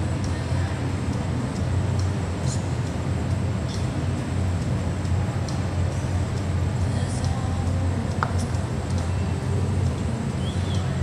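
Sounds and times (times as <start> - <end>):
low rumble of arena noise: 0.0 - 11.0
faint ticks: 0.2 - 11.0.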